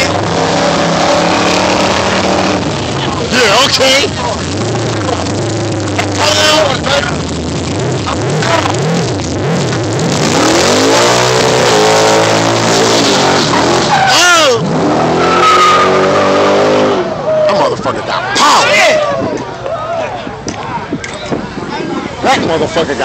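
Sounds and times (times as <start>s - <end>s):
car engine revving hard: 0.0s - 17.2s
tyres squealing: 13.0s - 14.5s.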